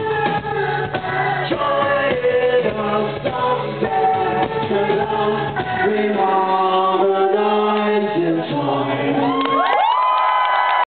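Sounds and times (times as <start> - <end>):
voices singing: 0.0 - 9.2.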